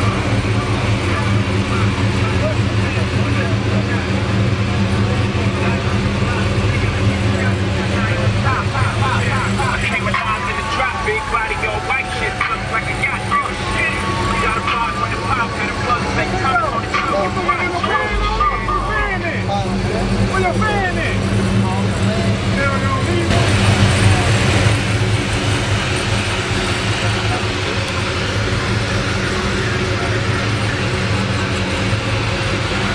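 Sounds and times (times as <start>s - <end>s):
car engine idling: 0.0s - 32.9s
people talking: 0.0s - 32.9s.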